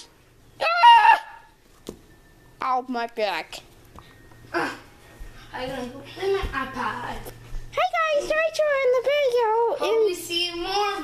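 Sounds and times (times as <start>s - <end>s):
child crying out: 0.6s - 1.5s.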